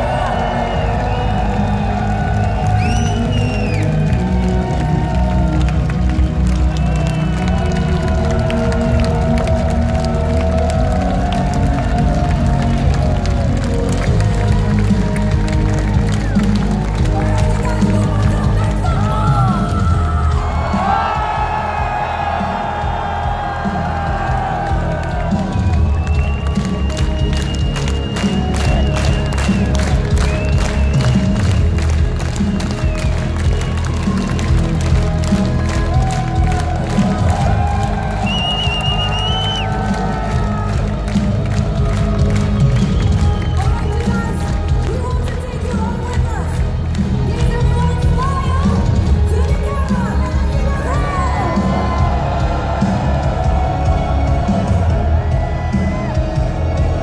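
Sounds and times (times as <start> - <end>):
crowd cheering: 0.0 - 57.0
music over concert loudspeakers: 0.0 - 57.0.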